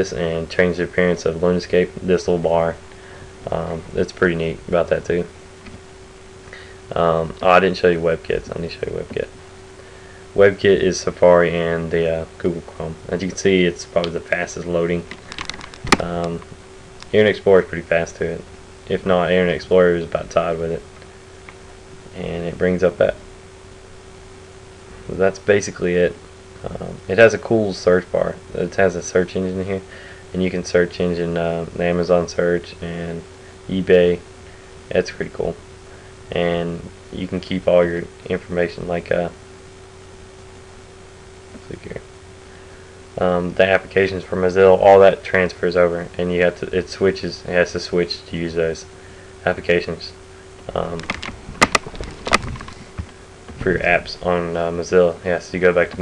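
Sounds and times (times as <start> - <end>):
person speaking: 0.0 - 5.8, 6.5 - 9.4, 10.3 - 20.9, 22.1 - 23.2, 25.0 - 34.2, 43.2 - 56.0
faint hum: 0.0 - 56.0
steady low hiss: 0.0 - 56.0.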